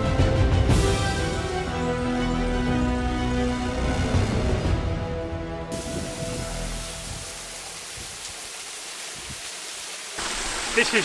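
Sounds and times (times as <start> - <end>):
background music: 0.0 - 7.8
waterfall rushing: 5.7 - 11.0.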